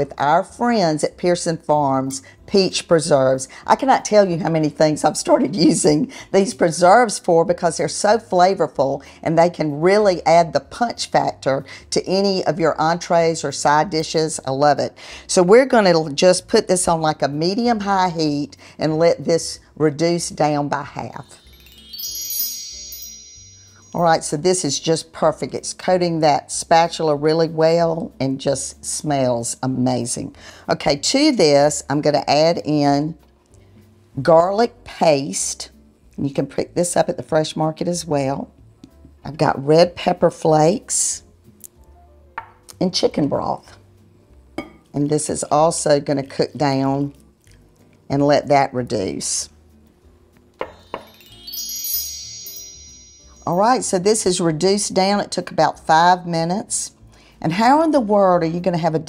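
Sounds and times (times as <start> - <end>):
bright ringing chime: 21.2 - 24.4, 50.7 - 53.8.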